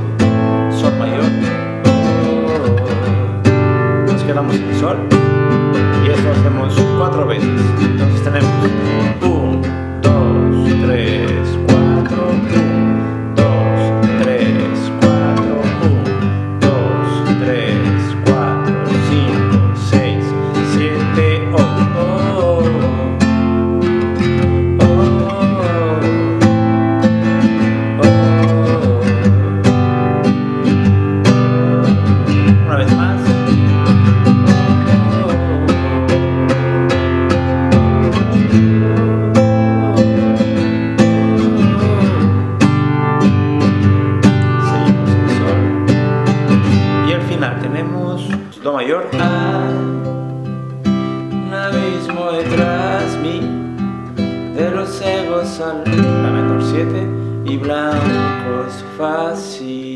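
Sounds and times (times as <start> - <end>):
classical guitar strumming: 0.0 - 59.9.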